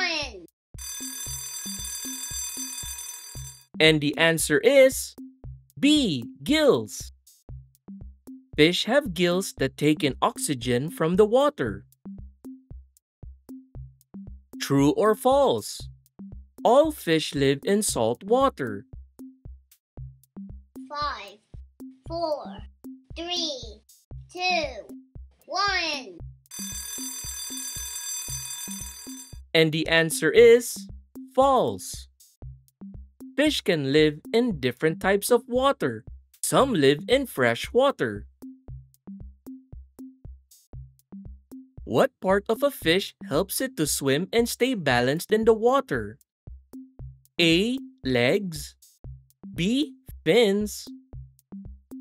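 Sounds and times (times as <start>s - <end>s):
alarm clock bell ringing: 0.8s - 3.7s, 26.5s - 29.4s
background music with low bass: 3.8s - 12.7s.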